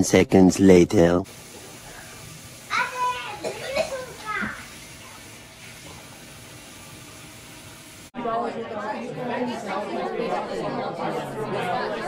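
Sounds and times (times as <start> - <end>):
room tone hiss: 0.1 - 8.1.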